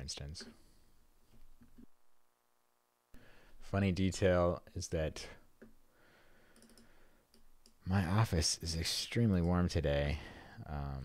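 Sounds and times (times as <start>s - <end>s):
computer mouse clicks: 6.5s - 7.8s.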